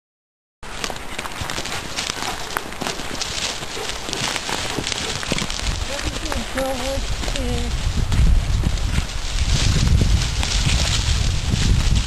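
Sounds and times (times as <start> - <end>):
dogs running through dry leaves: 0.6 - 12.0
twigs snapping: 0.7 - 7.4.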